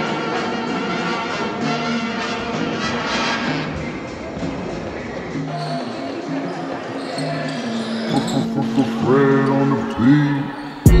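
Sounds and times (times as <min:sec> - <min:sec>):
music playing: 0:00.0 - 0:11.0
players' voices: 0:03.7 - 0:11.0.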